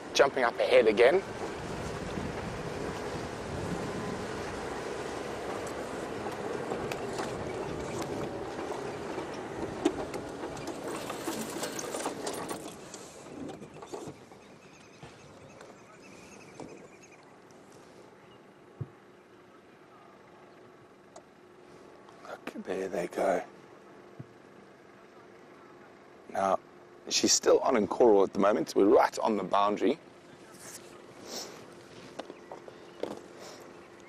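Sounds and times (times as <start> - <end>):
tyres on dirt track: 0.0 - 34.0
vehicle engine running: 0.0 - 34.0.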